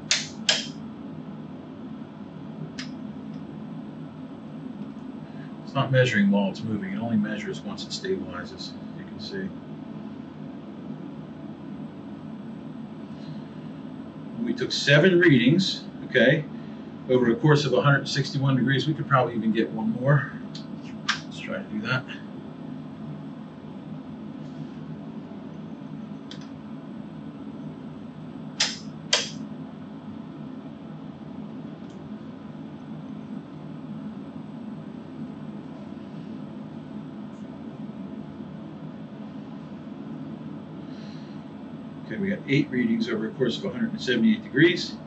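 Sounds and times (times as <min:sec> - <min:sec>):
low room hum: 0:00.0 - 0:45.0
sharp clicks: 0:00.1 - 0:00.8, 0:26.3 - 0:26.5, 0:28.6 - 0:29.4.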